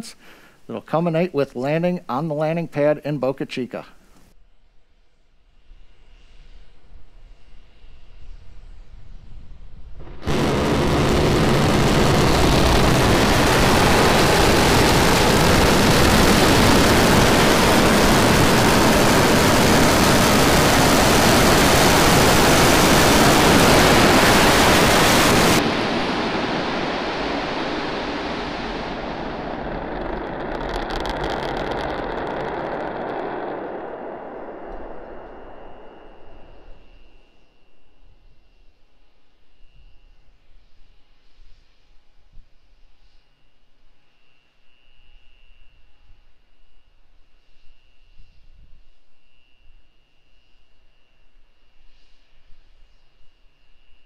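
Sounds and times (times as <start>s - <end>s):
low rumble with crackle: 6.2s - 37.4s
rocket engines roaring: 9.9s - 37.2s.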